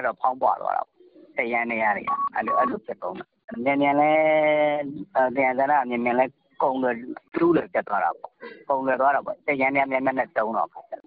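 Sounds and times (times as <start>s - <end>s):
person speaking over telephone: 0.0s - 11.0s.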